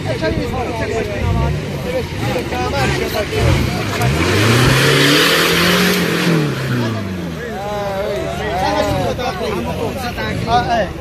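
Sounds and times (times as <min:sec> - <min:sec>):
off-road engine revving: 0:00.0 - 0:11.0
spectators talking: 0:00.0 - 0:11.0
vehicle driving through mud: 0:01.0 - 0:11.0.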